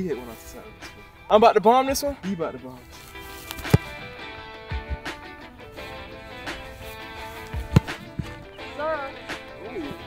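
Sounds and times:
background music: 0.0s - 10.0s
football being kicked: 3.5s - 4.1s, 7.5s - 8.4s.

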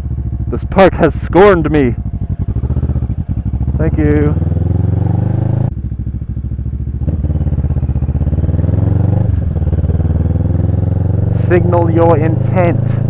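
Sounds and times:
motorcycle engine running: 0.0s - 13.0s.

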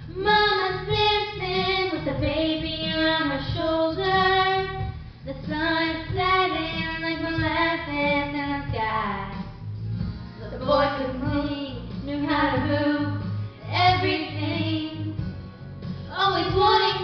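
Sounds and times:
girls singing rock ballad: 0.0s - 9.5s, 10.4s - 15.4s, 16.0s - 17.0s.

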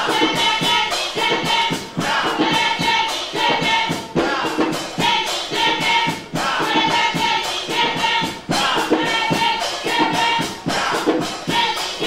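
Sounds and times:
chorus of voices singing: 0.0s - 12.0s
live band with percussion and horns: 0.0s - 12.0s.

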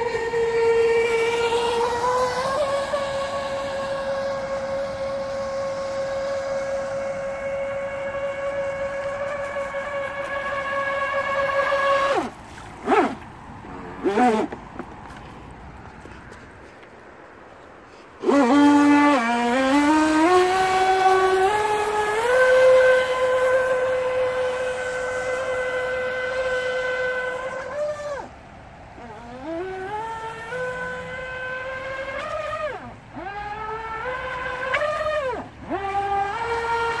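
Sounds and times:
toy boat motor whining: 0.0s - 14.6s, 18.2s - 28.4s, 29.0s - 37.0s.

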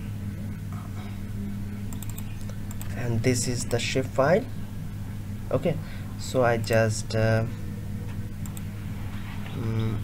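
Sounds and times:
steady low hum: 0.0s - 10.0s
computer mouse clicks: 1.9s - 3.0s, 8.4s - 8.7s.

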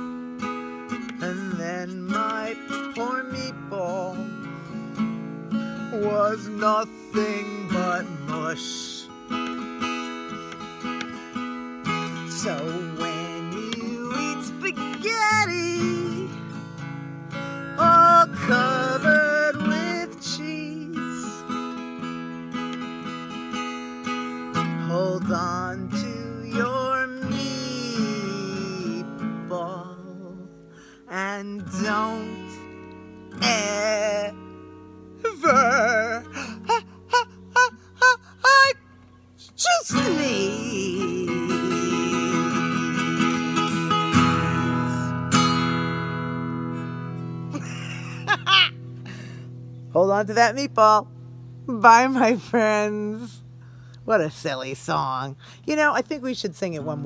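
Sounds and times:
strummed acoustic guitar: 0.0s - 57.0s
woman singing: 1.2s - 4.4s, 5.9s - 9.0s, 12.1s - 16.5s, 17.8s - 21.5s, 24.7s - 32.7s, 33.4s - 34.5s, 35.2s - 38.8s, 39.4s - 45.1s.

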